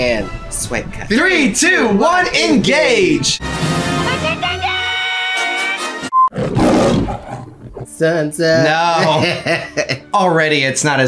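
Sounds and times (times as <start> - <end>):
music with held notes: 3.4 - 6.1
lion roar: 6.3 - 8.0.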